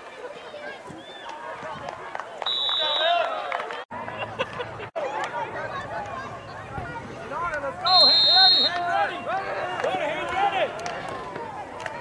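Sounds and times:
referee's whistle: 0:02.4 - 0:03.3, 0:07.8 - 0:08.8
crowd shouting: 0:05.0 - 0:12.0.

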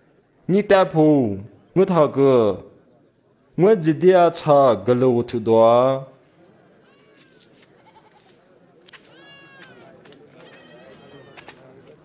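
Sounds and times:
livestock bleating: 0:07.8 - 0:08.3.

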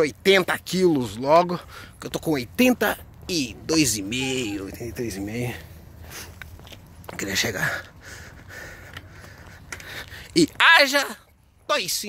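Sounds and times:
man breathing while jogging: 0:01.6 - 0:02.0, 0:05.7 - 0:06.7, 0:07.6 - 0:10.4.

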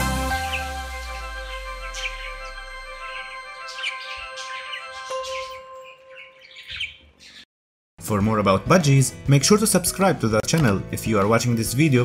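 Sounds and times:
soft music with held notes: 0:00.0 - 0:06.6, 0:08.0 - 0:12.0
budgerigars chirping: 0:03.6 - 0:07.5.

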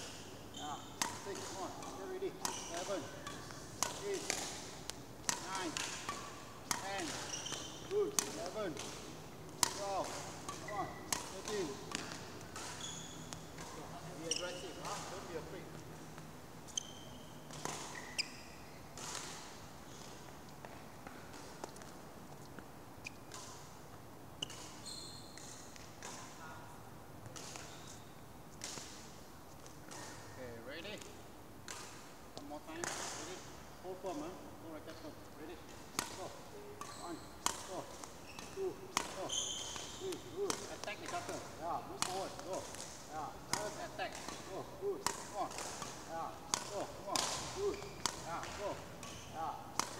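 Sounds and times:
shoes squeaking on court: 0:00.0 - 0:20.8, 0:21.4 - 0:23.6, 0:24.4 - 0:26.3, 0:27.4 - 0:28.2, 0:36.2 - 0:49.9.

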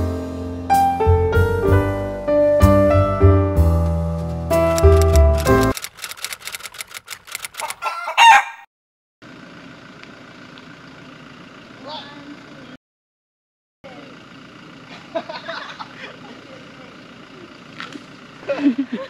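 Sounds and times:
piano music: 0:00.0 - 0:05.7
sharp clicks: 0:04.7 - 0:07.8
rooster crowing: 0:07.6 - 0:08.7
faint outdoor background noise: 0:09.2 - 0:12.8, 0:13.8 - 0:19.0.

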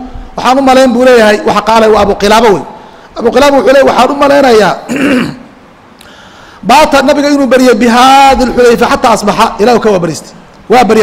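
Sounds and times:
man speaking: 0:00.0 - 0:05.3, 0:06.6 - 0:11.0
man clearing throat: 0:04.9 - 0:05.5.

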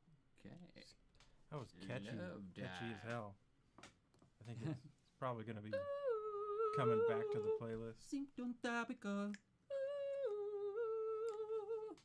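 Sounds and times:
person humming: 0:05.8 - 0:07.7, 0:09.7 - 0:12.0.

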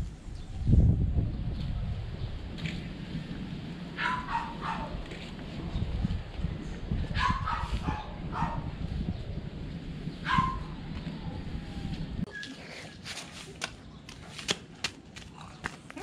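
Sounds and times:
dog barking in high yips: 0:04.0 - 0:05.0, 0:07.2 - 0:08.7, 0:10.2 - 0:10.8.

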